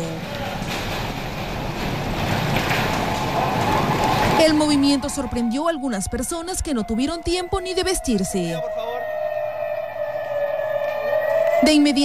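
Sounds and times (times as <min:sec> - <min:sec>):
warning siren wailing: 0:02.9 - 0:12.0.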